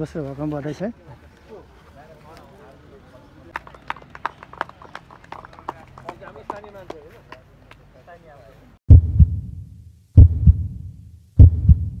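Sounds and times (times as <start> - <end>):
heartbeat thumps: 8.9 - 12.0.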